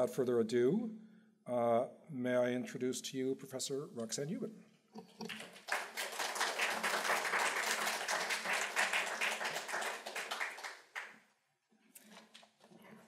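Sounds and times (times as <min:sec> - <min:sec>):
audience applauding: 0:05.2 - 0:11.2.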